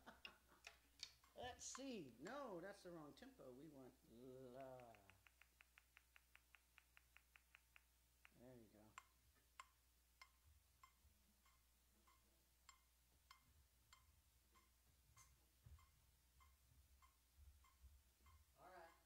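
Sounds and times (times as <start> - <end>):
metronome ticking: 0.0 - 19.0.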